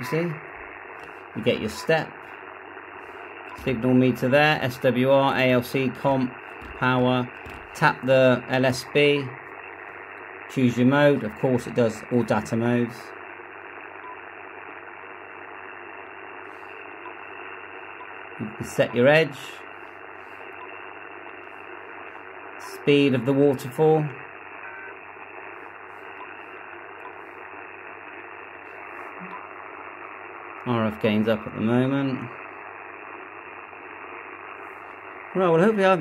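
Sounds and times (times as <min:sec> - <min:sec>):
radio static hiss: 0:00.0 - 0:36.0.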